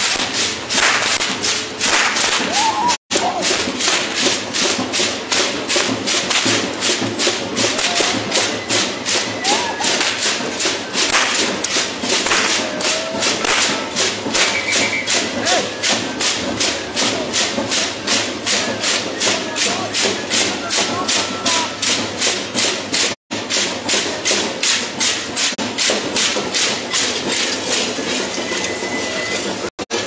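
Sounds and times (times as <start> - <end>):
drum marching beat: 0.0 - 30.0
shaken rattles: 3.2 - 28.7.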